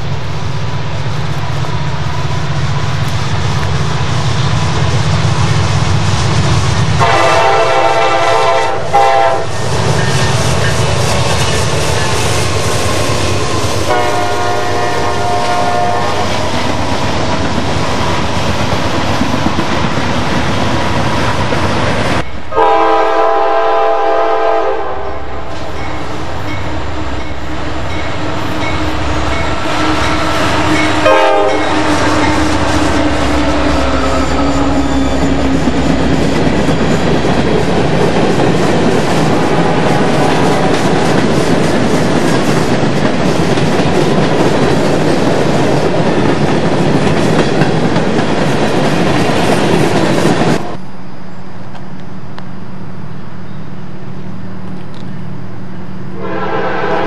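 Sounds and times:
freight train rumbling on rails: 0:00.0 - 0:57.0
locomotive air horn: 0:07.0 - 0:09.5, 0:13.9 - 0:16.4, 0:22.5 - 0:25.4, 0:29.6 - 0:31.9, 0:56.1 - 0:57.0.

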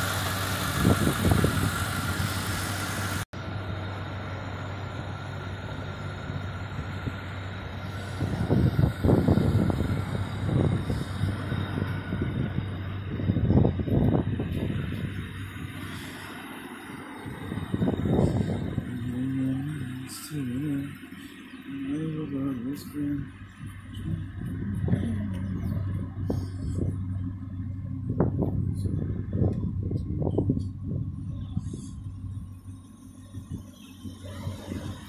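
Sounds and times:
car engine idling: 0:00.0 - 0:35.0
low rumbling rushes: 0:00.0 - 0:35.0.

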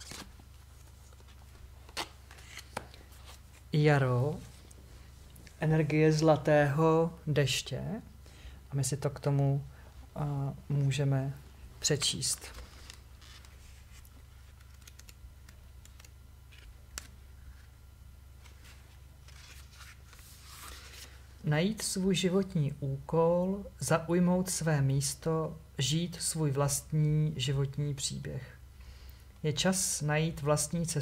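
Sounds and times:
cardboard cards being handled: 0:00.0 - 0:05.6, 0:12.0 - 0:17.8, 0:18.4 - 0:21.2
low steady hum: 0:00.0 - 0:31.0.

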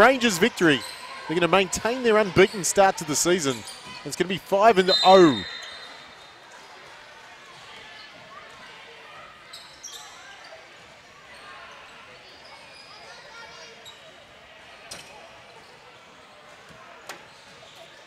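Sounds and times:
murmur of voices: 0:00.0 - 0:09.4.

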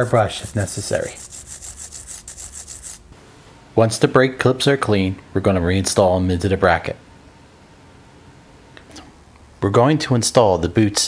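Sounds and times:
wire brush scraping metal: 0:00.0 - 0:03.1.

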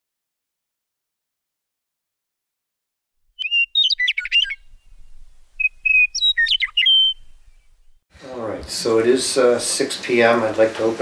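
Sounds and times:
bird song whistles and chirps: 0:03.4 - 0:08.0.

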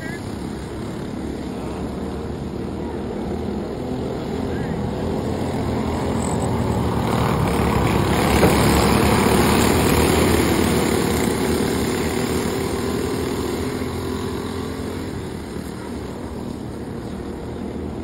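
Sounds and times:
racing kart engines passing: 0:00.0 - 0:18.0.

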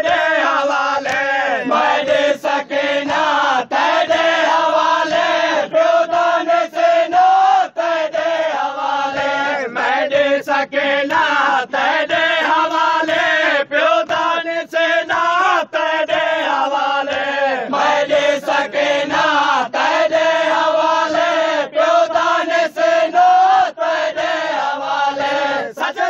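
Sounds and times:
group of voices chanting a lament: 0:00.0 - 0:26.0.

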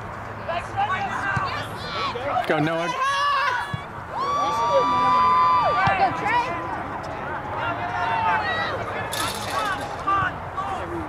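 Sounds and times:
people shouting and calling out: 0:00.5 - 0:11.0.

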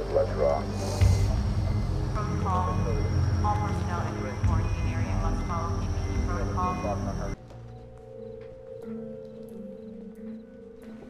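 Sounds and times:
muffled voices: 0:00.0 - 0:07.4
steady high whine: 0:00.0 - 0:07.4
loud low background noise: 0:00.0 - 0:11.0
quiet sustained music notes: 0:00.0 - 0:11.0.

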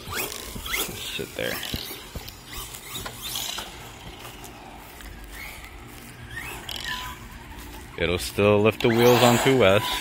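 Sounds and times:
electric motor whining: 0:00.0 - 0:08.1, 0:08.8 - 0:10.0.

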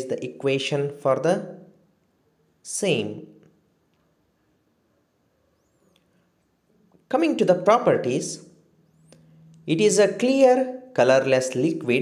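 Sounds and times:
faint high-pitched chirp: 0:04.4 - 0:06.9, 0:08.7 - 0:09.6.

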